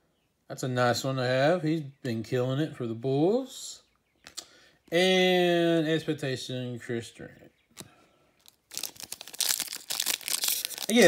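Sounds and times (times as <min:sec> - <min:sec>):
plastic wrapper crinkling and tearing: 0:07.8 - 0:11.0.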